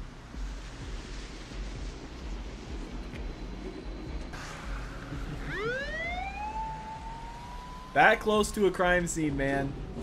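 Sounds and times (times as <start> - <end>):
police car siren wailing: 5.4 - 8.4.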